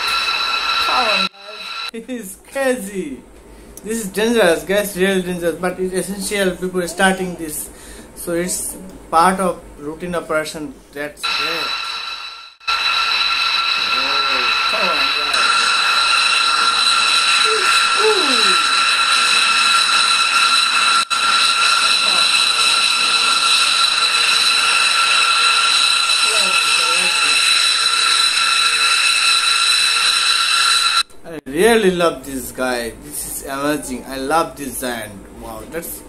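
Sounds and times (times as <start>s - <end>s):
jet engine whine: 0.0s - 1.9s, 11.2s - 31.1s.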